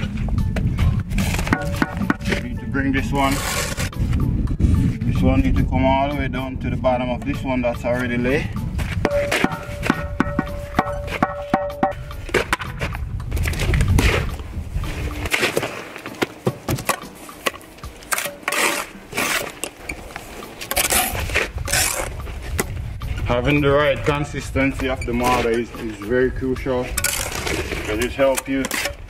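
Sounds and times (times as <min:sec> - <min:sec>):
trowel scraping mortar: 0:01.1 - 0:04.0, 0:17.0 - 0:22.6, 0:26.9 - 0:29.0.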